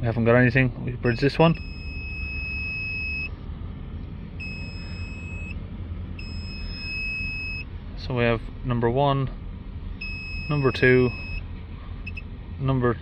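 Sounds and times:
low steady rumble: 0:00.0 - 0:13.0
multimeter beeps: 0:01.0 - 0:03.3, 0:04.4 - 0:05.6, 0:06.2 - 0:07.7, 0:10.0 - 0:11.4, 0:12.0 - 0:12.2.

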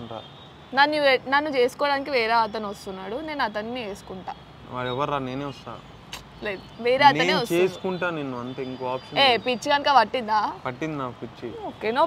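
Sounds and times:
man and woman talking: 0:04.1 - 0:12.0.

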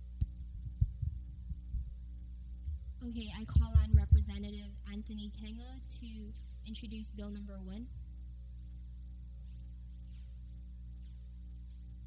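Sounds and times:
electrical hum: 0:00.0 - 0:12.0
microphone handling thumps: 0:00.2 - 0:02.0, 0:02.7 - 0:04.4.

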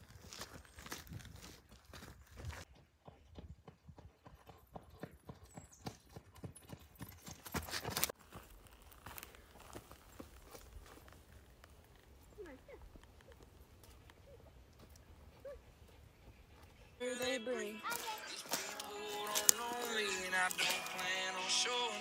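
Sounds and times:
footsteps running on dirt: 0:00.1 - 0:11.4, 0:17.8 - 0:21.7.

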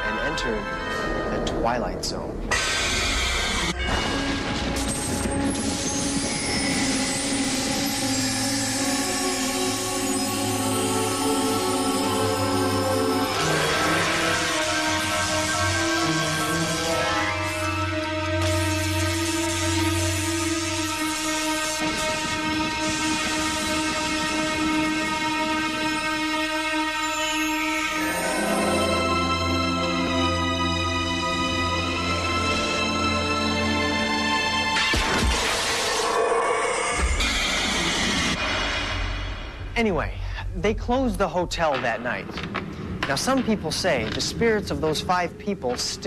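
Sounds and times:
eerie music: 0:00.0 - 0:46.0
low drone: 0:02.6 - 0:39.7.

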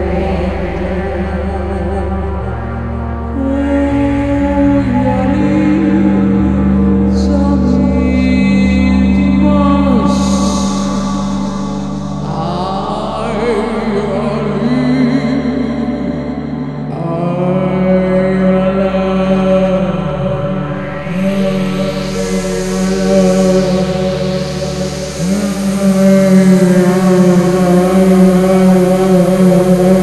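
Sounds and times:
woman's wordless singing: 0:00.0 - 0:02.7, 0:03.4 - 0:30.0
electronic synth drone: 0:00.0 - 0:30.0
wash of hiss: 0:21.1 - 0:30.0.

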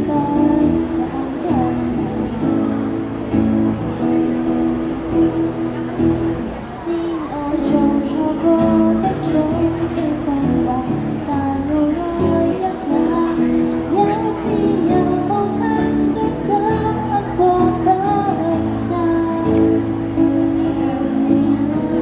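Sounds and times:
woman singing ballad: 0:00.0 - 0:02.4, 0:06.8 - 0:22.0
acoustic guitar: 0:00.0 - 0:22.0.

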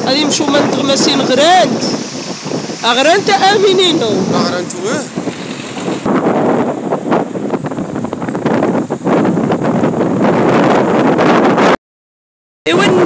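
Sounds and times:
wind buffeting microphone: 0:00.0 - 0:11.8, 0:12.7 - 0:13.0.

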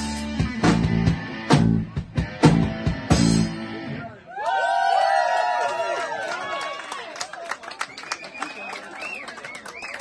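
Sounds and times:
crowd cheering and whooping: 0:04.1 - 0:10.0.

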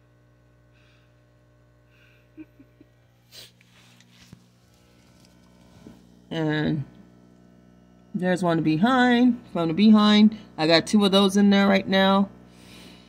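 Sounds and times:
aquarium filter hum: 0:00.0 - 0:13.0.

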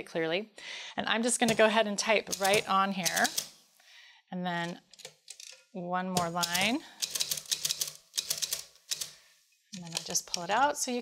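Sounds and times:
manual typewriter keys clacking: 0:02.3 - 0:03.5, 0:06.2 - 0:09.2, 0:09.8 - 0:10.6.

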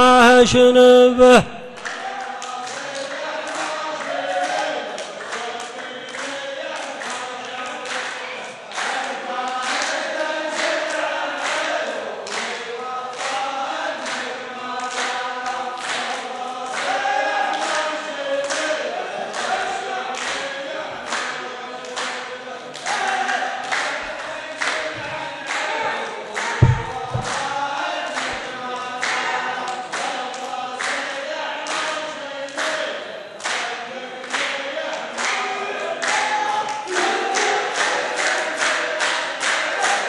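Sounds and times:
men chanting in unison: 0:00.0 - 0:40.0
rhythmic hand-clapping: 0:01.3 - 0:40.0
low thump: 0:26.6 - 0:27.7.

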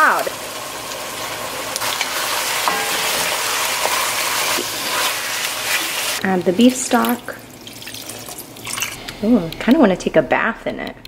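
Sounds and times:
food sizzling in a pot: 0:00.0 - 0:09.0.

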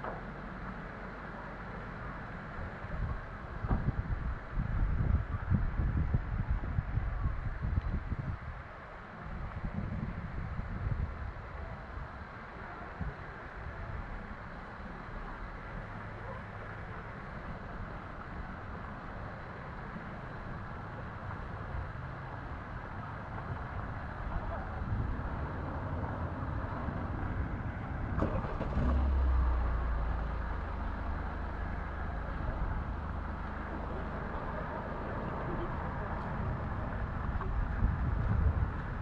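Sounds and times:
vehicle engine rumble: 0:00.0 - 0:39.0
distant voices: 0:11.2 - 0:39.0.

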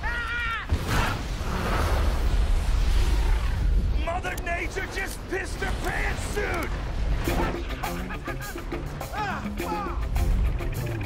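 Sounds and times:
man yelling: 0:00.0 - 0:00.7, 0:08.4 - 0:10.1.

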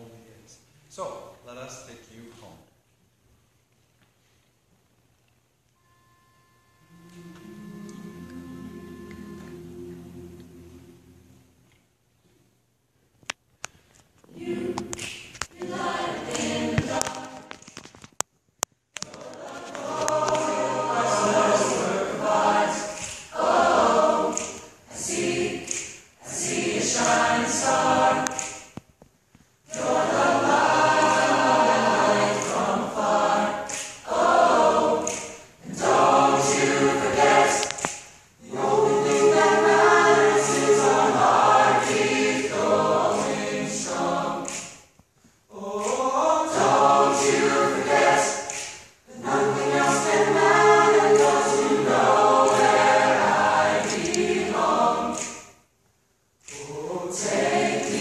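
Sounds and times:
mixed choir singing a cappella: 0:06.8 - 0:11.6, 0:14.2 - 0:17.8, 0:19.0 - 0:28.8, 0:29.6 - 0:44.9, 0:45.5 - 0:55.7, 0:56.4 - 0:58.0.

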